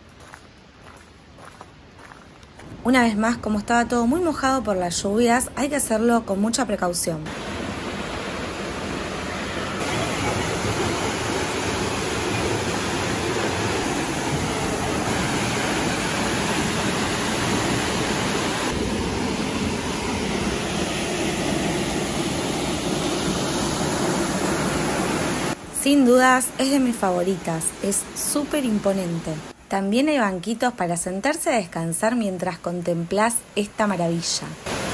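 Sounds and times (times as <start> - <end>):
waterfall rushing: 7.3 - 25.6, 34.7 - 34.9.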